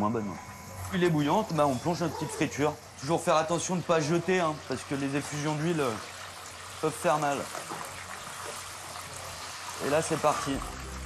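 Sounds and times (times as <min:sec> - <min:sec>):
fish deep-frying in oil: 0:00.6 - 0:11.0.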